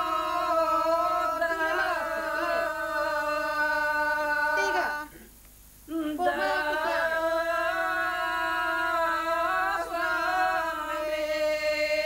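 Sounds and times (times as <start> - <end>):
women singing unaccompanied: 0.0 - 5.2, 5.9 - 12.0.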